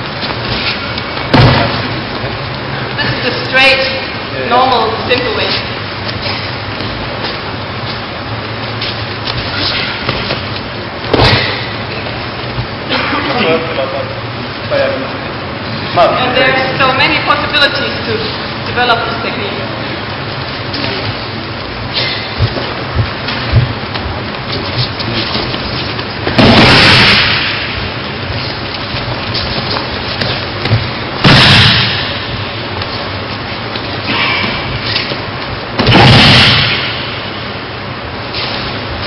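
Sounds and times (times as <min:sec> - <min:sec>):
body crashing onto mats: 0:01.3 - 0:02.0, 0:11.1 - 0:11.7, 0:26.2 - 0:27.8, 0:31.2 - 0:32.2, 0:35.8 - 0:36.9.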